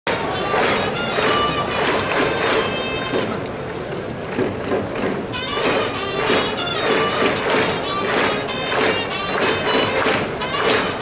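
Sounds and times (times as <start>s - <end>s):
trumpets playing cheer song: 0.1s - 3.4s, 5.3s - 11.0s.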